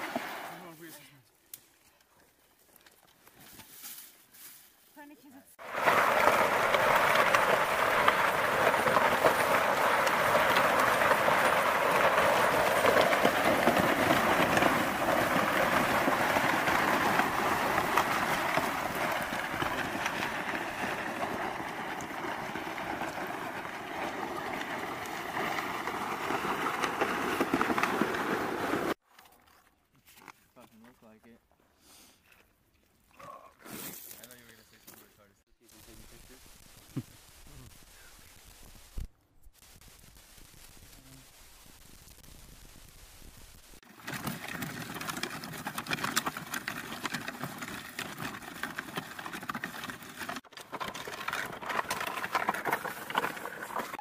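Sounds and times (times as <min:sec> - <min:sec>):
plastic litter scraping on gravel: 0:00.0 - 0:00.9, 0:05.6 - 0:29.0, 0:43.8 - 0:54.0.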